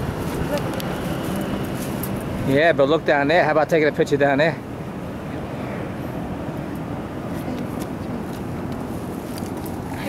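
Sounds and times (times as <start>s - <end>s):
wind buffeting microphone: 0.0s - 3.1s.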